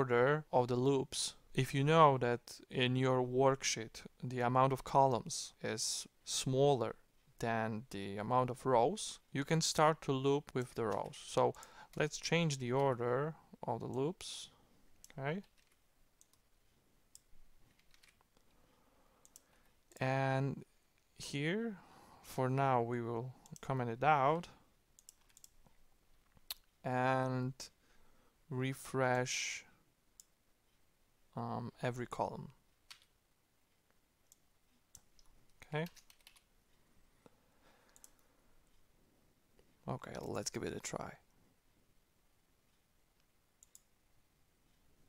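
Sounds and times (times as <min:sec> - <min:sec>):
keyboard and mouse clicks: 0:10.6 - 0:12.0, 0:15.0 - 0:16.4, 0:17.1 - 0:18.6, 0:19.2 - 0:19.5, 0:25.0 - 0:26.8, 0:32.8 - 0:33.1, 0:34.3 - 0:36.5, 0:43.2 - 0:43.9
computer keyboard keystrokes: 0:15.0 - 0:16.4, 0:17.2 - 0:18.2, 0:32.9 - 0:33.1, 0:35.0 - 0:36.5.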